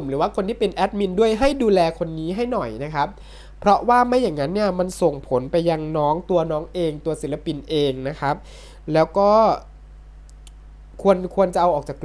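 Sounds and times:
man speaking: 0.0s - 9.7s, 11.0s - 12.0s
faint low hum: 0.0s - 12.0s.

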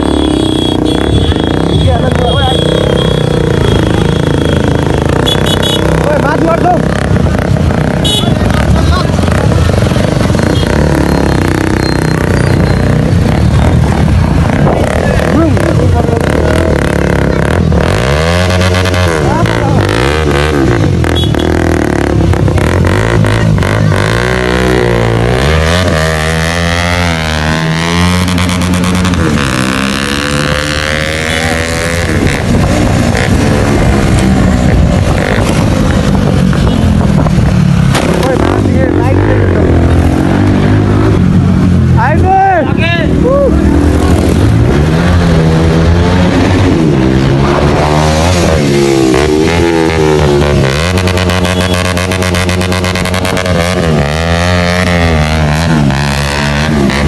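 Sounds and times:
motorcycle engines revving: 0.0s - 57.0s.

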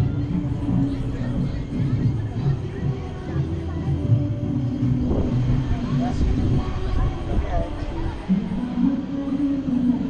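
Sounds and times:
wind rushing over microphone: 0.0s - 9.2s
voices in background: 0.0s - 10.0s.

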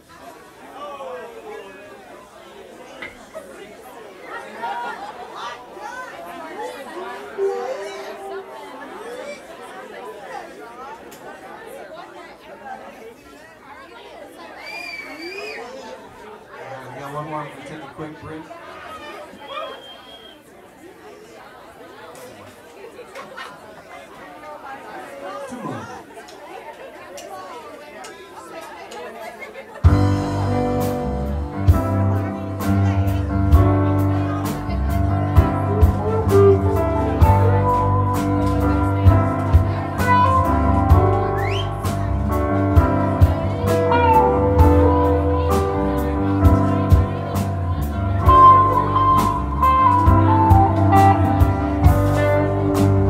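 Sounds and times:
crowd chatter in a bar: 0.0s - 53.0s
band playing loudly: 7.4s - 9.0s, 29.8s - 53.0s.

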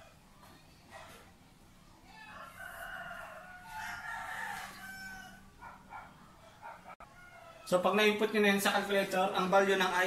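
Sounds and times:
rooster crowing: 2.0s - 8.0s.

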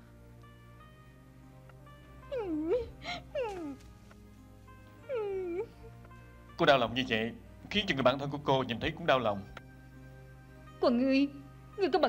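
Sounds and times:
soft background music: 0.0s - 12.0s
woman sobbing: 2.2s - 3.9s, 5.0s - 6.0s.

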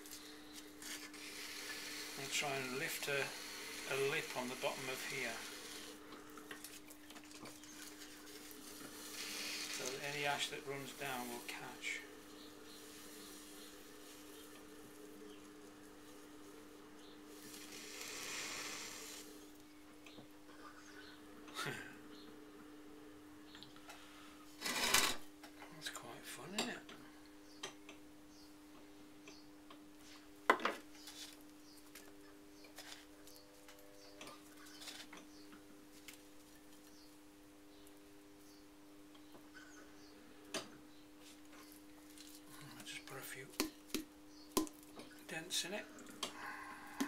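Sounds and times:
potter's wheel humming: 0.0s - 27.3s.

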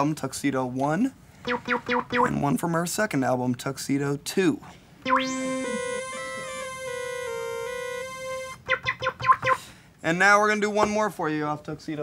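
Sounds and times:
synthesizer sustained chord: 5.1s - 8.6s.

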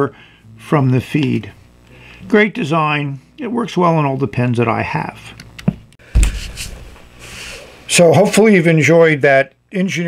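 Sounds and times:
dull low thump: 6.0s - 7.0s.

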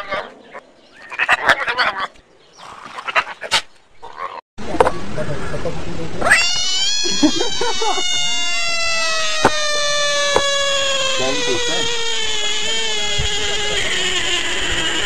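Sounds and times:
bullfrog distress scream: 0.0s - 0.3s, 1.0s - 2.1s, 6.2s - 15.0s.

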